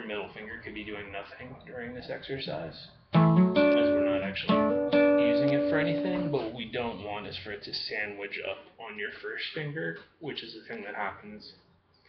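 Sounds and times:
acoustic guitar picked notes: 0:03.1 - 0:06.6.

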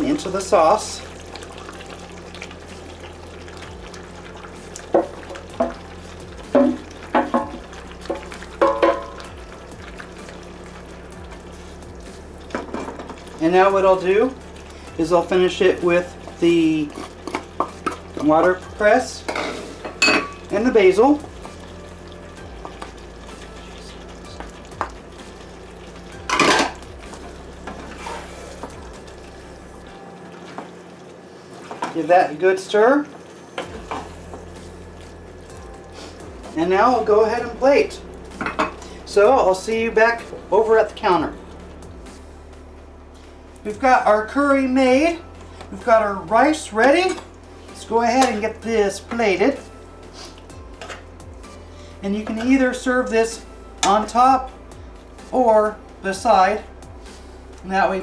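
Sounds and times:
curry sauce simmering: 0:00.1 - 0:19.2, 0:19.8 - 0:31.9
spatula scraping skillet: 0:26.3 - 0:28.8
spatula scraping a pan: 0:27.7 - 0:28.6
steady low hum: 0:33.4 - 0:58.0.

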